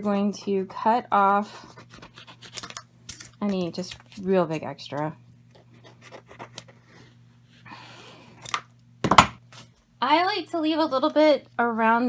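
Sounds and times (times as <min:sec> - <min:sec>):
scissors cutting: 0:01.8 - 0:04.6.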